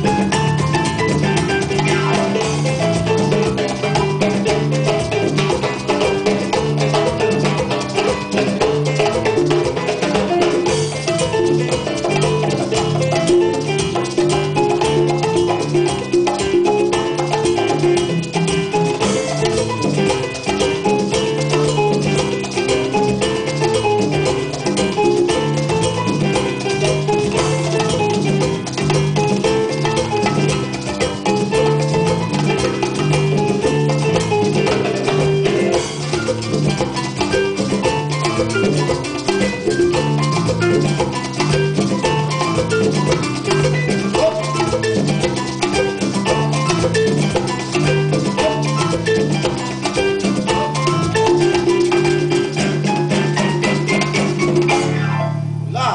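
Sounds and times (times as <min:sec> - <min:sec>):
congas and hand percussion: 0:00.0 - 0:55.9
electric bass line: 0:00.0 - 0:55.9.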